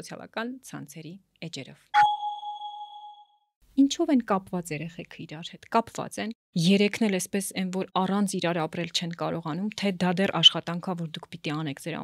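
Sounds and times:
woman speaking: 0.0s - 1.9s, 3.8s - 12.0s
bright chime ringing: 2.0s - 3.4s.

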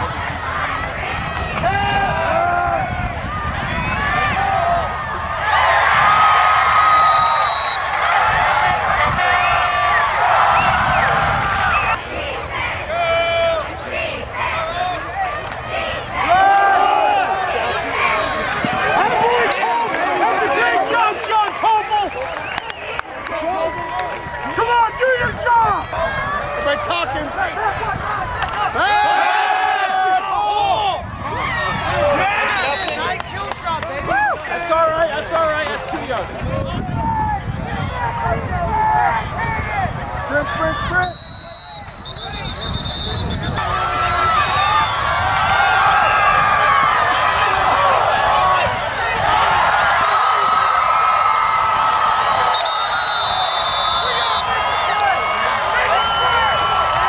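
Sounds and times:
crowd shouting and talking: 0.0s - 57.0s.

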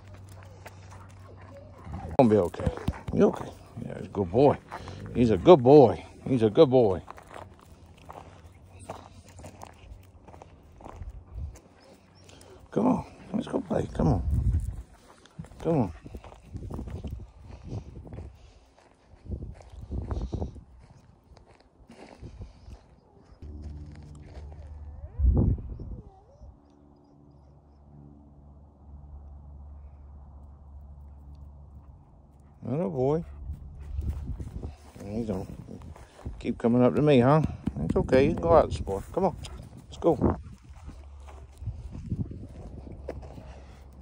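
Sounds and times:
footsteps on pebbly dirt: 0.0s - 25.0s, 33.8s - 44.0s
steady low hum: 23.3s - 36.4s.

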